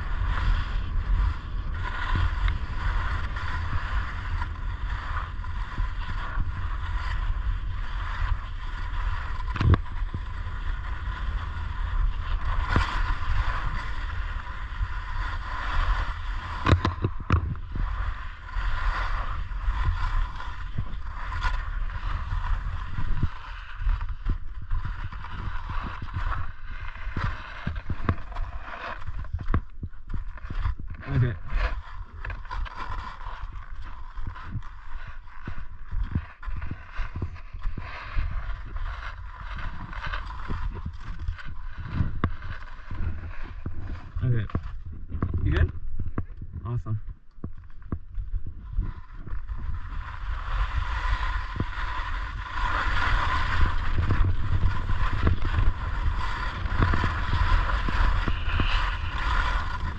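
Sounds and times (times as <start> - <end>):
skis scraping over snow: 0.0 - 59.9
wind buffeting microphone: 35.5 - 59.9.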